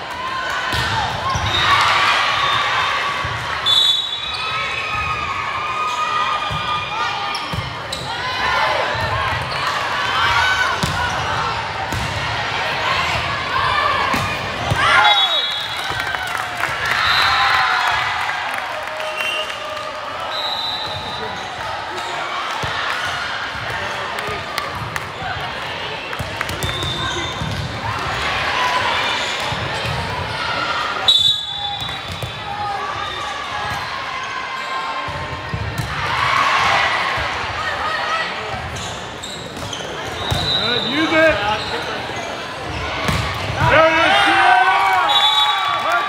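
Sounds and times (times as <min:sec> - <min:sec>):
shouting and cheering: 0:00.0 - 0:38.5, 0:42.8 - 0:46.0
chatter echoing in a gym: 0:00.0 - 0:46.0
referee's whistle: 0:03.6 - 0:04.6, 0:15.0 - 0:16.0, 0:16.9 - 0:17.6, 0:19.0 - 0:19.6, 0:20.2 - 0:21.4, 0:26.6 - 0:27.5, 0:31.1 - 0:32.4, 0:39.2 - 0:41.9, 0:45.0 - 0:45.9
shoes squeaking on court: 0:38.7 - 0:42.5.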